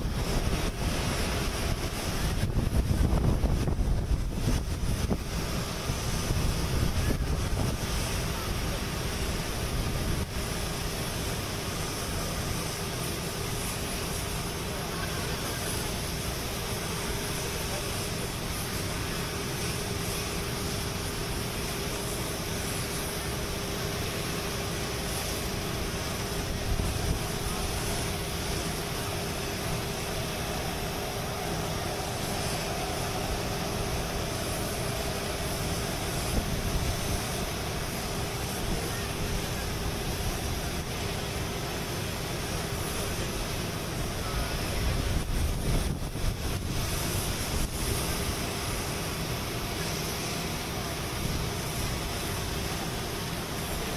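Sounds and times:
airliner running noise: 0.0 - 53.9
constant hum tone: 0.0 - 53.9.

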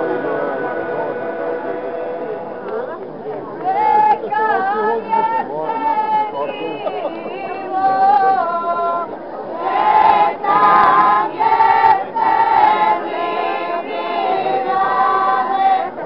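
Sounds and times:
folk group singing unaccompanied: 0.0 - 16.0.

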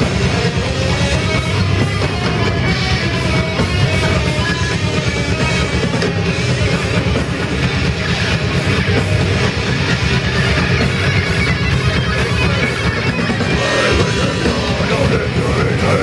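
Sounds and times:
death metal band playing live: 0.0 - 16.0.

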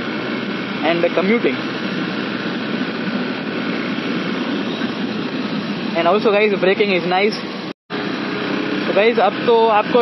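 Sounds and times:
motorcycle engine running: 0.0 - 10.0
wind rushing on microphone: 0.0 - 10.0.

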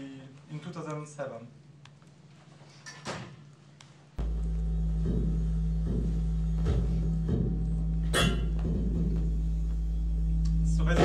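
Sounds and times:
steady low drone: 4.2 - 11.0.

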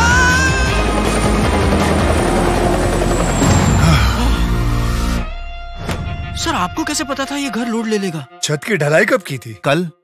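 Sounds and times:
helicopter rotor beating: 0.0 - 5.3.

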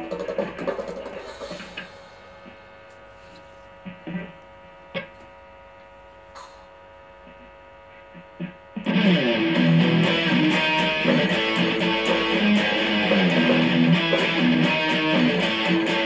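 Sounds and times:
guitar amp humming: 0.0 - 16.0.

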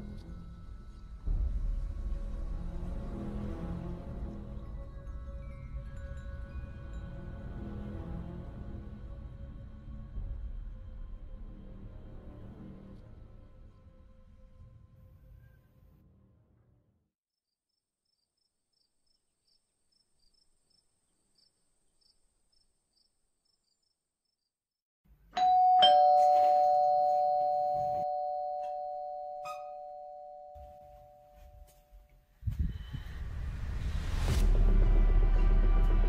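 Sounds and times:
low ominous music: 0.0 - 16.7, 32.7 - 36.0
two-tone electronic doorbell: 25.4 - 31.8.

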